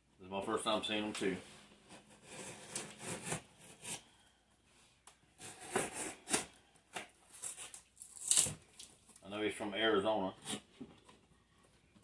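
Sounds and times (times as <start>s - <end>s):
knife cutting cardboard box: 1.9s - 4.2s, 5.4s - 8.6s.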